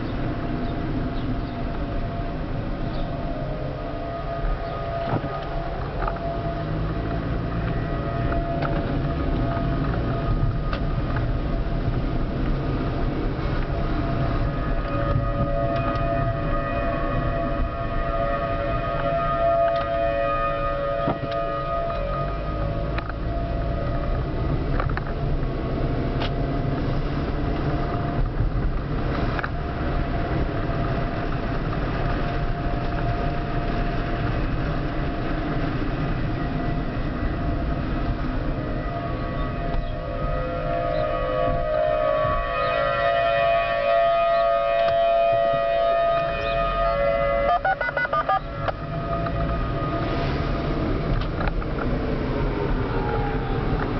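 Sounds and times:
car engine and road noise: 0.0 - 53.9
tornado warning sirens: 0.0 - 53.9.

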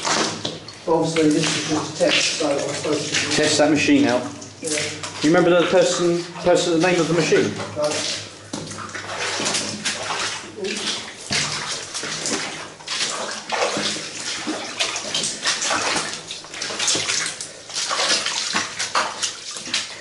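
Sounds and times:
footsteps splashing through water: 0.0 - 20.0.

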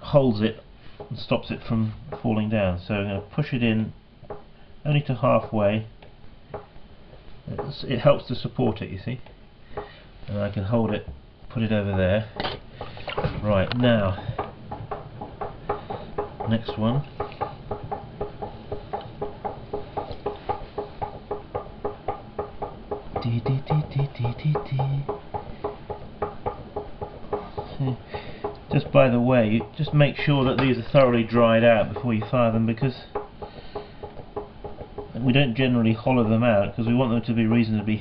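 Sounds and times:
soft irregular taps and clicks: 0.8 - 3.5, 4.2 - 38.0
rhythmic knocking: 0.9 - 8.8, 9.7 - 10.0, 10.7 - 38.0.

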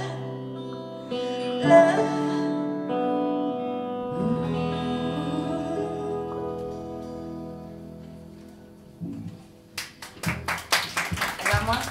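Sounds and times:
audience clapping: 9.8 - 11.9.

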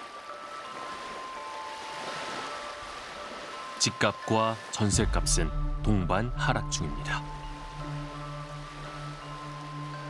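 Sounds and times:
small waves breaking on shore: 0.0 - 4.9
soft background music: 0.0 - 10.0.

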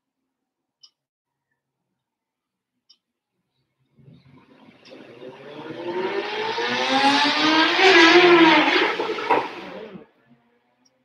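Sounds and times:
vehicle engine passing: 4.0 - 10.1.

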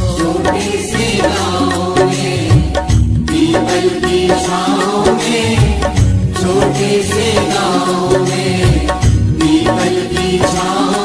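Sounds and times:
devotional song melody: 0.0 - 11.0
person singing: 0.0 - 11.0
steady drum beat: 0.0 - 11.0.

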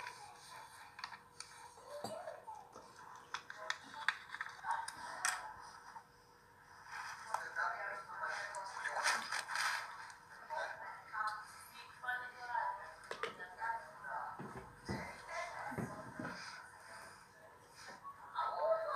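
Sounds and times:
faint steady hum: 0.0 - 18.9
people talking quietly: 0.0 - 18.9.

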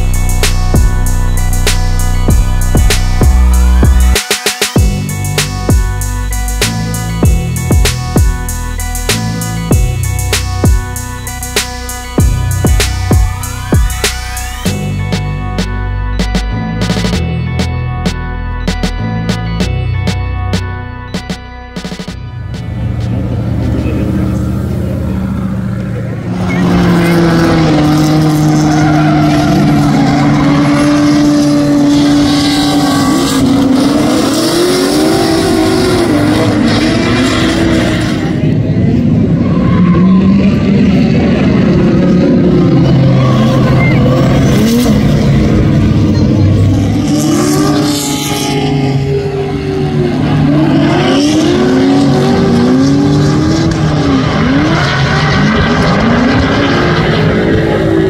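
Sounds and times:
car engines revving hard: 0.0 - 4.2, 21.2 - 58.0.

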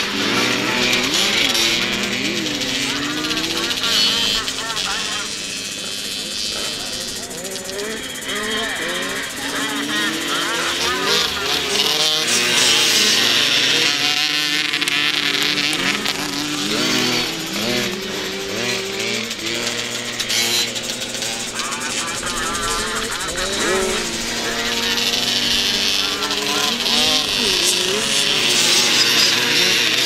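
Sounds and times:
motocross bikes racing past: 0.0 - 30.0.

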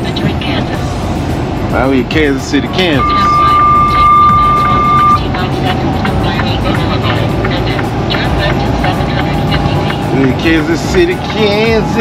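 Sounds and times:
music playing: 0.0 - 12.0
truck road and engine noise: 0.0 - 12.0
electronic beep: 3.0 - 5.2.

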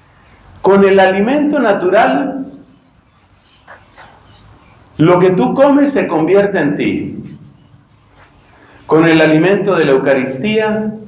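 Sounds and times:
faint animal calls: 2.7 - 4.9.

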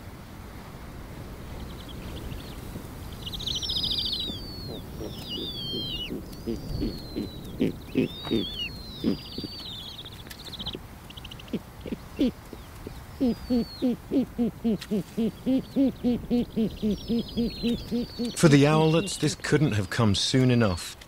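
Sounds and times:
birds whistling and trilling: 1.6 - 20.4
owl hooting: 3.2 - 19.2.

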